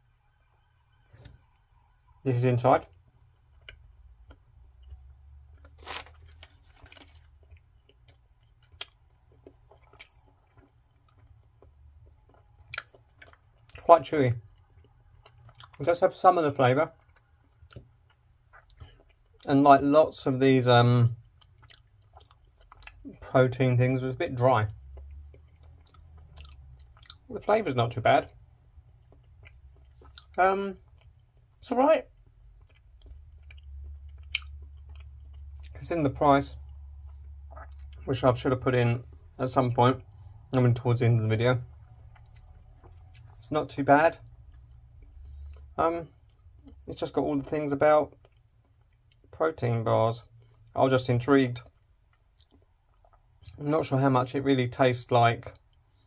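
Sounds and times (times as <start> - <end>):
low steady hum: 0.0 - 56.0
person chewing: 2.9 - 15.8, 16.9 - 19.5, 21.2 - 23.2, 24.7 - 27.3, 28.3 - 35.8, 36.6 - 38.1, 41.6 - 43.6, 44.2 - 46.9, 48.1 - 49.4, 51.6 - 53.6.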